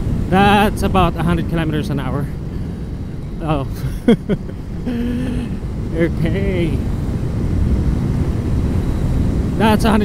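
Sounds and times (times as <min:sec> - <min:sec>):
motorcycle engine rumble: 0:00.0 - 0:10.0
wind rush: 0:00.0 - 0:10.0
person laughing: 0:03.7 - 0:05.6.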